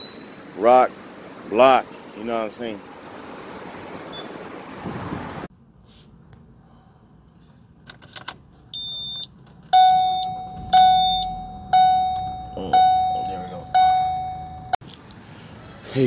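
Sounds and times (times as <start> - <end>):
road noise inside car: 0.0 - 16.0
car warning chime dinging: 8.8 - 14.8
short high beep: 8.8 - 14.8.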